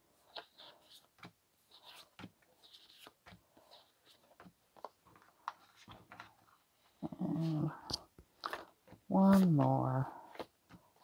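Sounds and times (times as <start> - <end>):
cards being shuffled: 0.2 - 6.6, 7.3 - 11.0.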